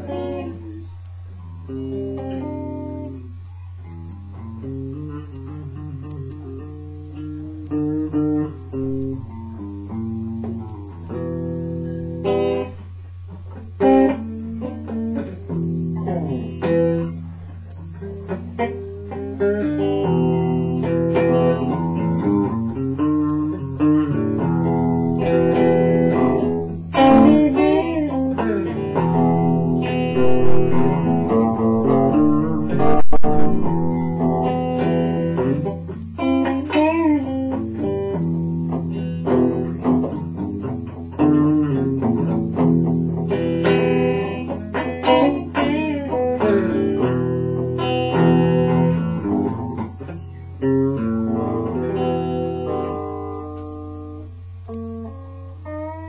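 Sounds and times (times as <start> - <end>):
blues guitar riff: 0.0 - 56.0.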